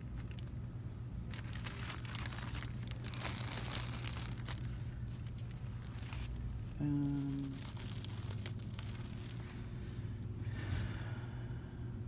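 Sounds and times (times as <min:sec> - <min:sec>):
plastic packaging crinkling: 0:00.0 - 0:09.9
steady low hum: 0:00.0 - 0:12.0.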